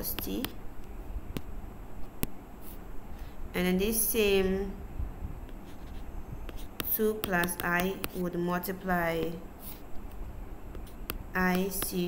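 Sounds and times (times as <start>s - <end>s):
stylus tapping on tablet: 0.0s - 2.4s, 5.5s - 9.4s, 10.0s - 12.0s
faint low hum: 0.0s - 12.0s.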